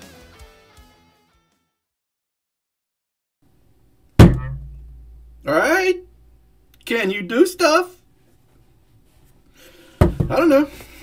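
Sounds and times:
faint room noise: 3.4s - 11.0s
loud thump: 4.2s - 5.4s, 10.0s - 10.4s
low hum: 4.2s - 6.6s.

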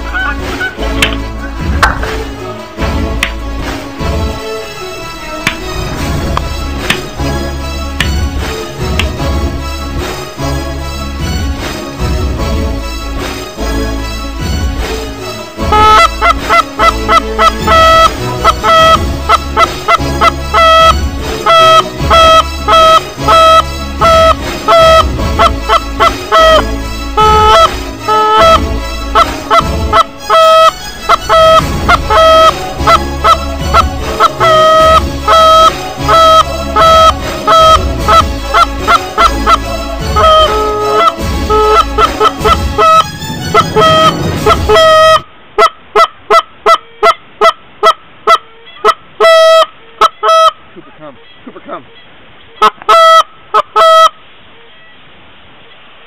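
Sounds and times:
geese honking: 0.0s - 3.4s, 15.6s - 50.6s, 52.6s - 54.2s
low rumble: 0.9s - 10.0s, 39.5s - 45.5s.

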